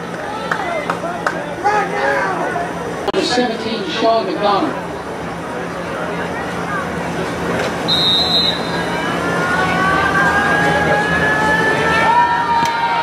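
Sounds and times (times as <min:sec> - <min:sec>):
crowd noise: 0:00.0 - 0:13.0
voices yelling: 0:00.2 - 0:04.0, 0:08.2 - 0:13.0
high whistle blast: 0:07.9 - 0:08.9.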